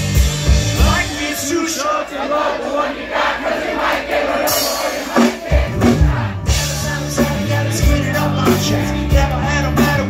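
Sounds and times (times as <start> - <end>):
live reggae rock band: 0.0 - 2.5, 3.1 - 10.0
large crowd cheering: 0.0 - 9.0
heavy low drum hits: 5.4 - 10.0.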